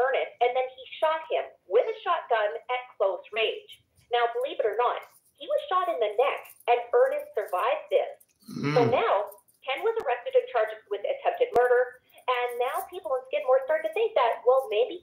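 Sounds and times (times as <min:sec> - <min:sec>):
person talking over telephone: 0:08.5 - 0:11.8.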